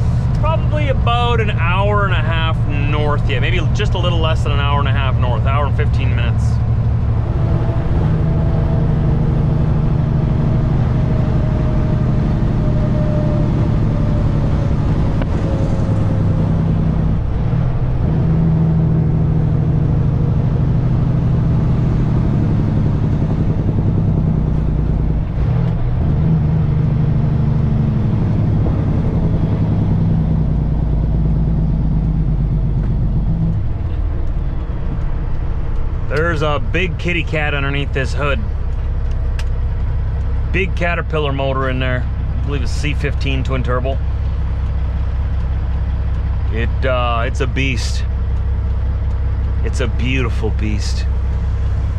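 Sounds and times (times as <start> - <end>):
truck diesel engine drone: 0.0 - 51.9.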